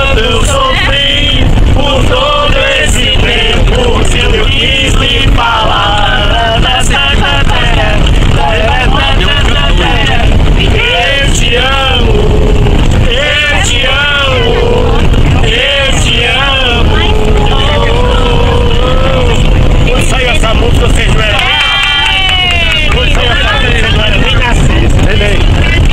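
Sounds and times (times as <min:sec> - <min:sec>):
bus rumble: 0:00.0 - 0:25.9
voices singing loudly: 0:00.0 - 0:25.9.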